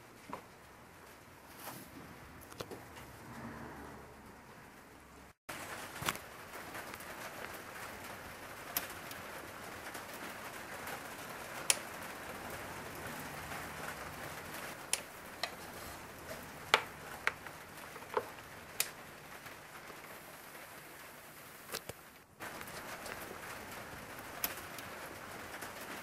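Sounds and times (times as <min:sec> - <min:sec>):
steady background hiss: 0:05.0 - 0:26.0.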